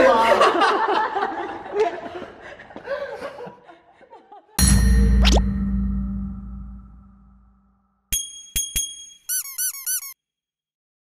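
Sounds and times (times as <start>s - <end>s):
high chirps sound effect: 4.6s - 7.6s.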